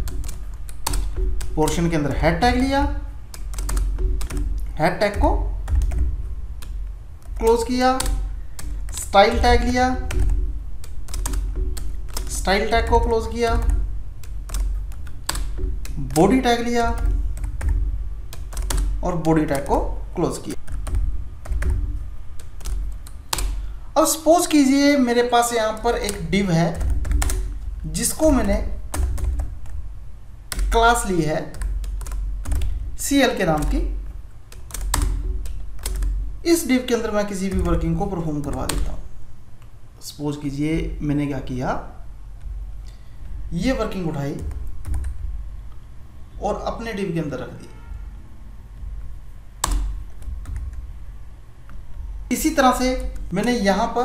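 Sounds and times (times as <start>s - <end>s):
low hum: 0.0s - 24.0s
computer keyboard keystrokes: 0.0s - 24.6s, 25.4s - 29.8s, 30.5s - 39.8s, 42.4s - 45.8s, 48.8s - 51.0s, 51.6s - 54.0s
low steady hum: 0.0s - 54.0s.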